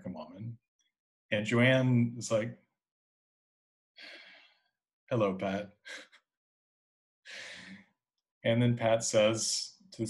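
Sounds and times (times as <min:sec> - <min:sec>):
man breathing: 0:04.0 - 0:04.7, 0:07.3 - 0:07.9.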